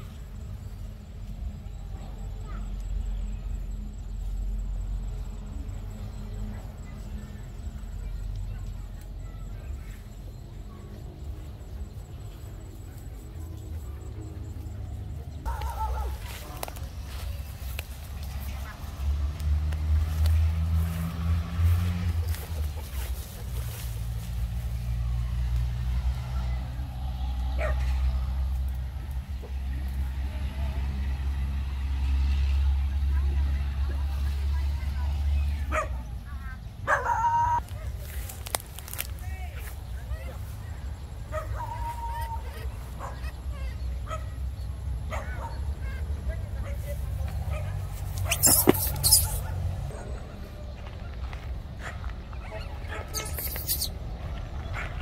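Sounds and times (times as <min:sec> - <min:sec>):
vehicle engine rumbling: 0:00.0 - 0:36.9, 0:37.5 - 0:55.0
dog yipping and whimpering: 0:48.2 - 0:49.6, 0:52.9 - 0:53.9.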